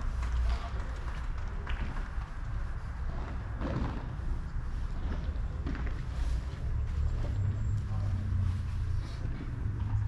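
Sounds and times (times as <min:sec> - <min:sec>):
steady low rumble: 0:00.0 - 0:10.0
footsteps on artificial turf: 0:03.1 - 0:10.0.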